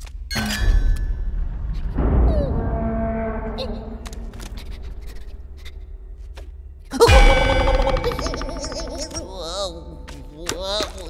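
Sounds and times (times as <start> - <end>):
cartoon bell hit with low thud: 7.0 - 9.8.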